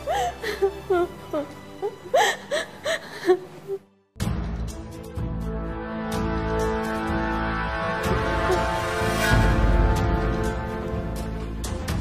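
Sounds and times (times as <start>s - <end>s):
woman sobbing: 0.0s - 3.9s, 8.3s - 8.8s.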